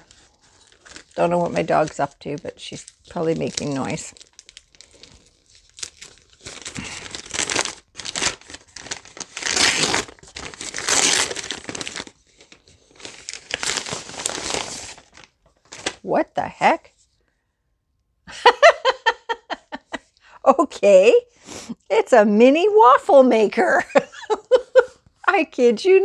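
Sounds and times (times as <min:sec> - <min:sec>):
wrapping paper crinkling and tearing: 0:00.0 - 0:16.1.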